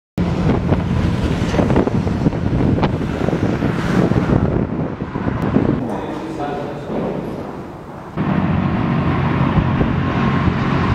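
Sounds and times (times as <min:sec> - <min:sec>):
wind buffeting microphone: 0:00.2 - 0:10.9.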